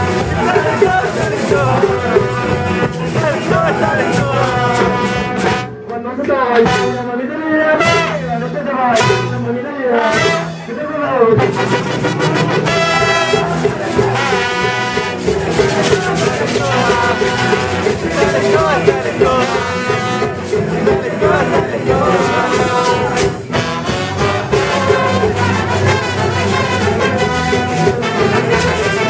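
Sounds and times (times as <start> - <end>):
brass band playing lively tune: 0.0 - 29.0
crowd voices: 0.0 - 29.0.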